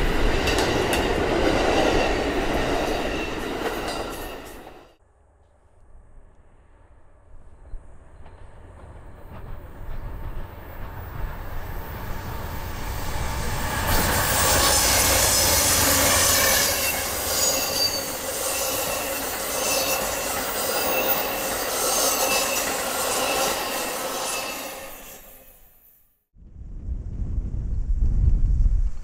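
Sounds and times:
train wheels rumbling on rail: 0.0s - 5.0s, 6.5s - 25.3s
high wheel squeals: 11.7s - 25.9s.

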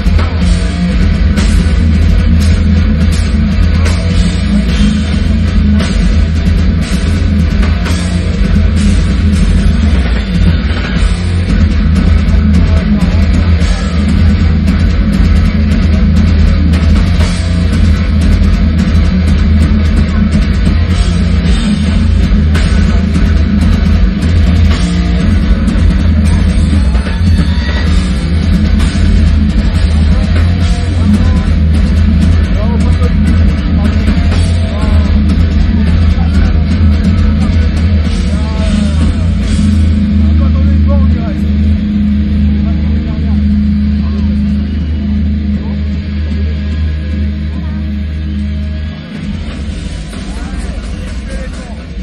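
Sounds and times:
metal band playing live: 0.0s - 52.0s
rapid drumming with cymbals: 0.0s - 52.0s
person shouting over music: 26.8s - 28.2s.

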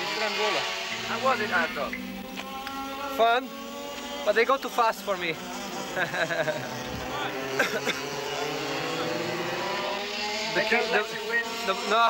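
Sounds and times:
go-kart engine drone: 0.0s - 12.0s
men talking: 0.0s - 12.0s.

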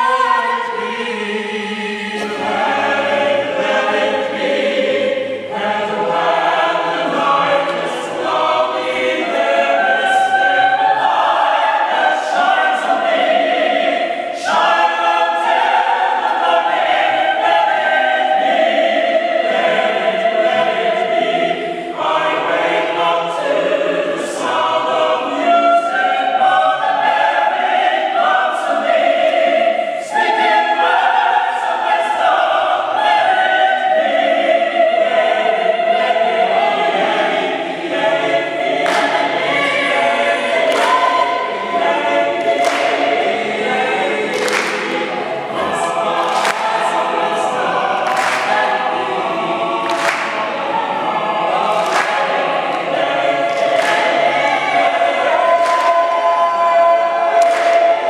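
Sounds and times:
mixed choir singing a cappella: 0.0s - 58.0s
people clapping a steady beat: 37.9s - 58.0s.

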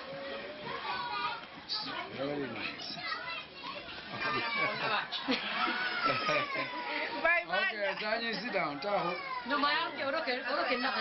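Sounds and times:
children's voices: 0.0s - 5.0s
many voices chattering: 0.0s - 11.0s.

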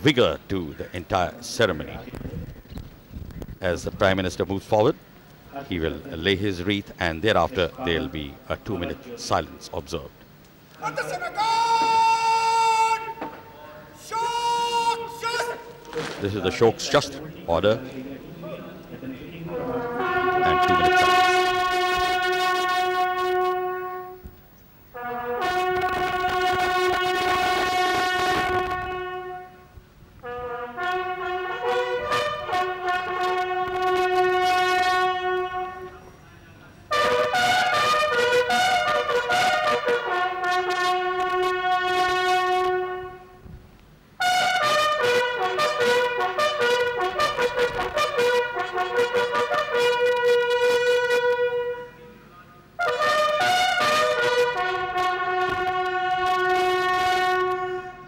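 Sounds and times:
military bugles playing: 5.8s - 17.8s, 19.4s - 58.0s.

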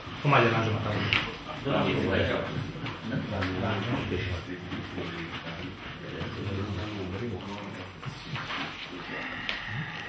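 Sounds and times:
paper rustling: 2.6s - 9.6s.

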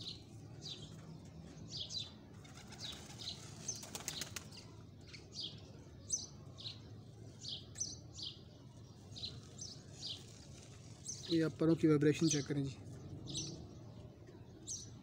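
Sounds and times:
bird chirping: 0.0s - 15.0s.

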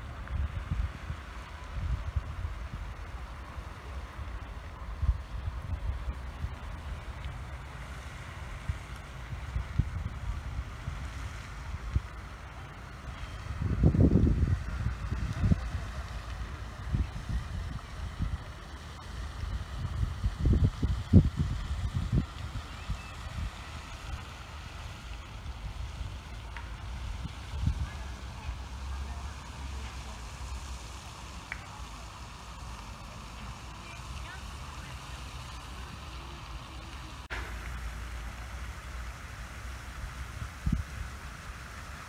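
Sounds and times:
wind buffeting microphone: 0.0s - 7.2s, 8.0s - 12.3s, 12.9s - 28.6s, 39.9s - 42.0s
faint outdoor hiss: 0.0s - 42.0s.

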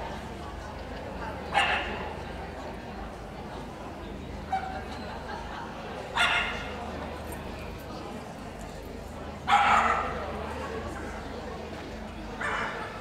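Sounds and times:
steady background noise: 0.0s - 13.0s
dog barking: 6.2s - 6.6s, 9.5s - 10.2s, 12.4s - 13.0s.

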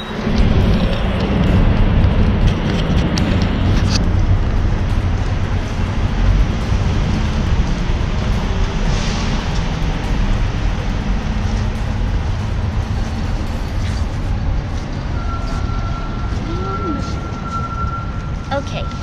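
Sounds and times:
truck engines rumbling: 0.0s - 19.0s.

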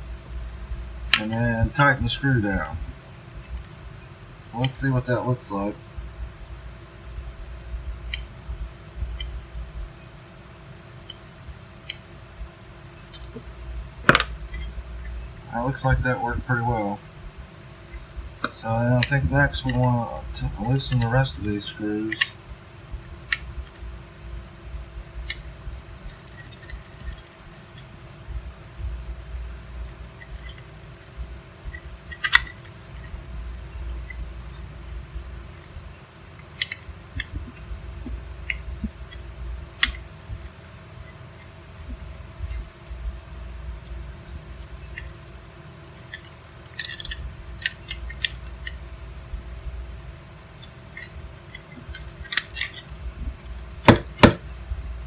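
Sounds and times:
steady low hum: 0.0s - 55.0s
screwdriver metallic clicks: 22.1s - 22.3s, 35.6s - 37.6s, 45.9s - 48.8s, 50.6s - 54.5s.

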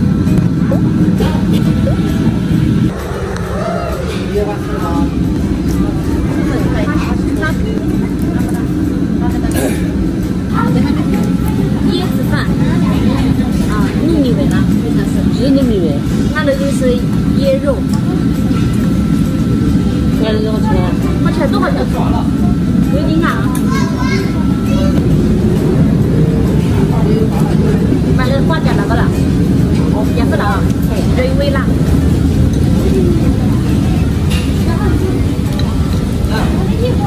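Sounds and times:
faint voices: 0.0s - 37.0s
restaurant background rumble: 0.0s - 37.0s.

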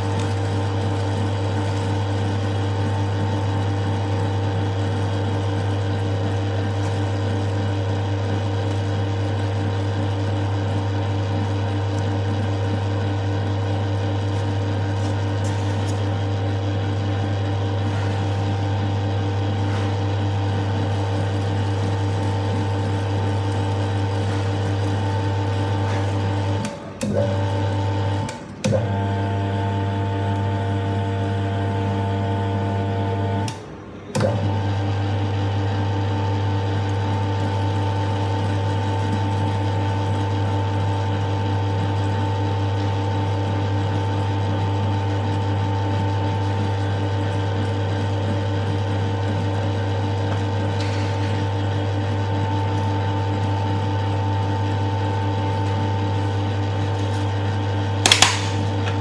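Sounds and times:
electric meat grinder running: 0.0s - 33.6s, 34.2s - 59.0s.

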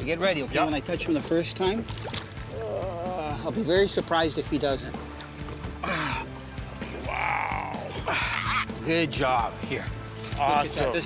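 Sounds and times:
background music: 0.0s - 11.0s
fish splashing water: 1.7s - 3.0s.

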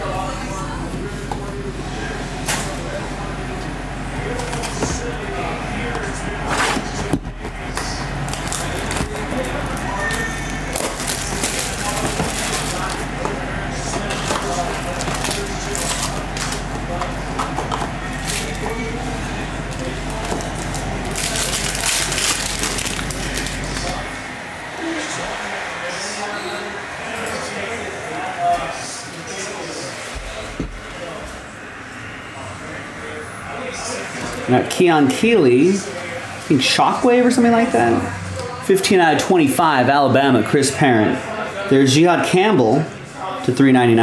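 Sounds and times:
steady low hum: 0.0s - 41.8s
wrapper crackling: 8.3s - 13.0s, 20.2s - 24.0s.

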